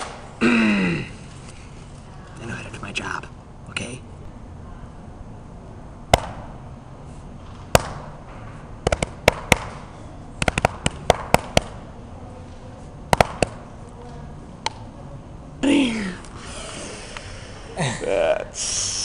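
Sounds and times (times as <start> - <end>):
faint room hum: 0.0 - 19.0
sharp clicks and taps: 10.4 - 11.8.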